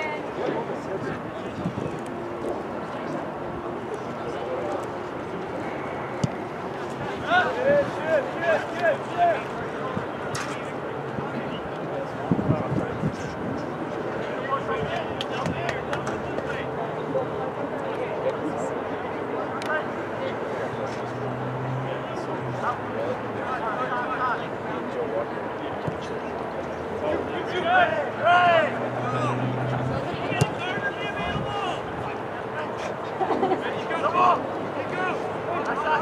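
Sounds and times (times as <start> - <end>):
players calling out: 25.7 - 36.0.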